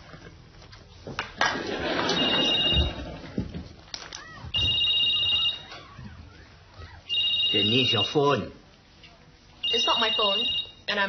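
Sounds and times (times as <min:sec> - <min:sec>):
mobile phone ringing: 0:01.9 - 0:03.3, 0:04.6 - 0:05.8, 0:07.1 - 0:08.4, 0:09.6 - 0:10.9.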